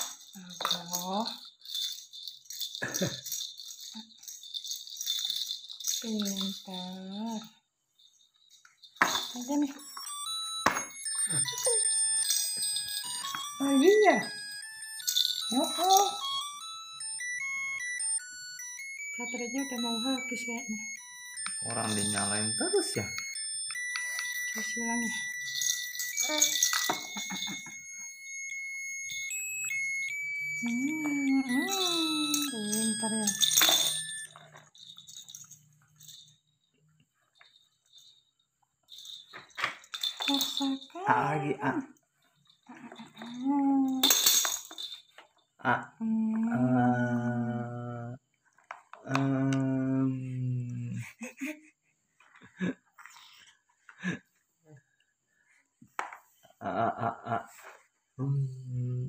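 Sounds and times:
baby rattle shaking: 0.0s - 36.4s, 37.2s - 45.5s, 52.2s - 53.9s.

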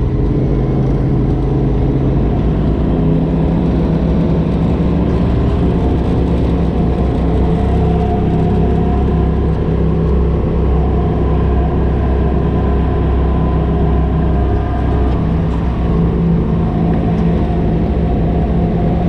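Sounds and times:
vehicle engine running: 0.0s - 19.0s.

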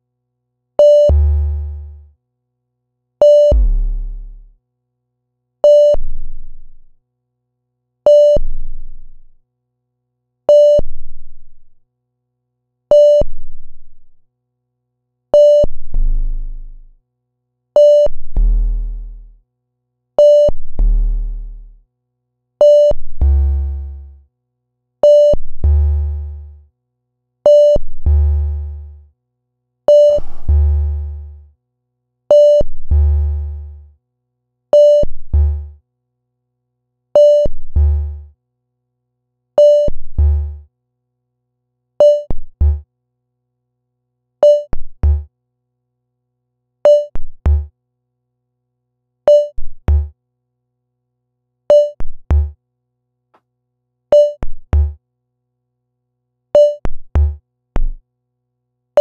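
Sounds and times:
heavy bass tone: 3.5s - 4.5s, 30.0s - 31.0s.

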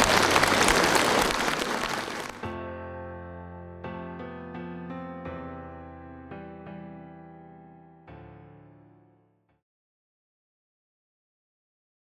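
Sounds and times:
audience applauding: 0.0s - 2.5s.

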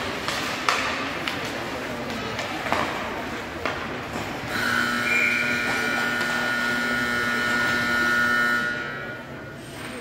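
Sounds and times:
buzzy horn blast: 4.5s - 9.3s.

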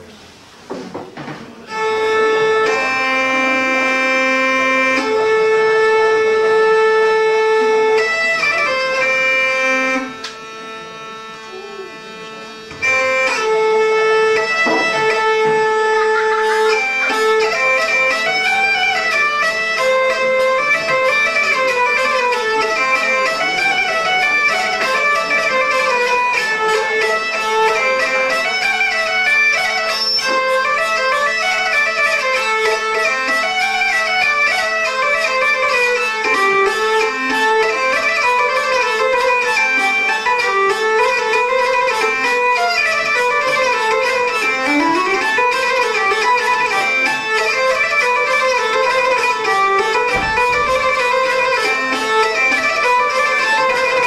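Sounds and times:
hurdy-gurdy folk tune with drone: 0.0s - 54.0s
traditional instruments playing: 0.0s - 54.0s
light percussive strikes: 14.4s - 15.7s, 36.2s - 54.0s.

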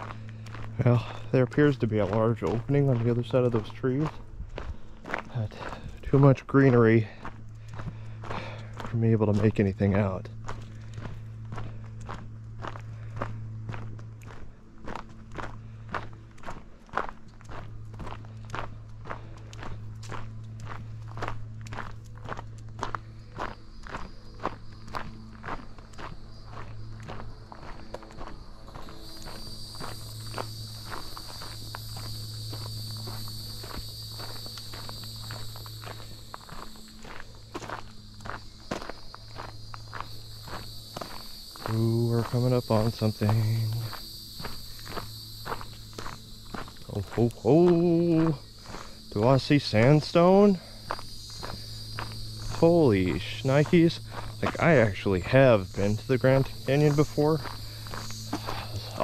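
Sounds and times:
footsteps on gravel: 0.0s - 59.0s
high insect buzz: 0.0s - 59.0s.

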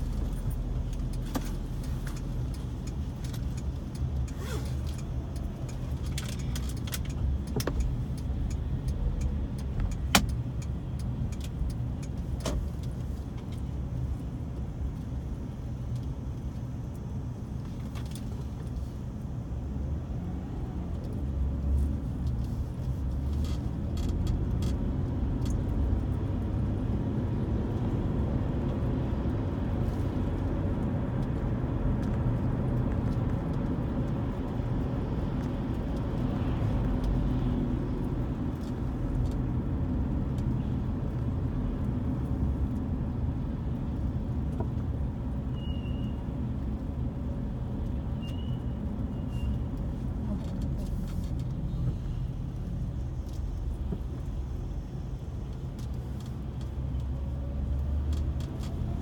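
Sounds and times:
vehicle road and engine rumble: 0.0s - 59.0s.

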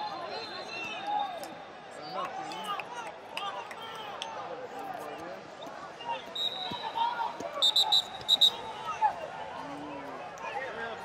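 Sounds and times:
referee's whistle blasts: 6.3s - 8.8s.

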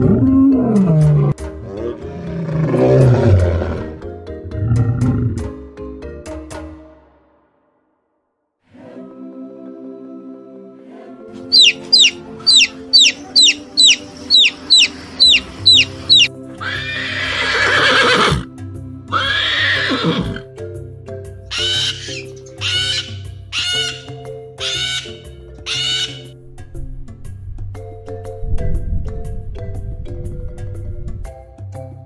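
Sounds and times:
soft background music: 8.7s - 32.0s
short high calls: 11.5s - 16.3s
horse whinnying: 14.8s - 18.5s, 19.1s - 20.4s.

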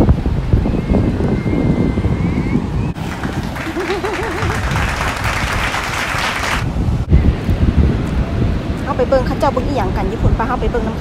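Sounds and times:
wind buffeting microphone: 0.0s - 11.0s
surf: 2.9s - 7.2s
applause: 3.0s - 6.6s.

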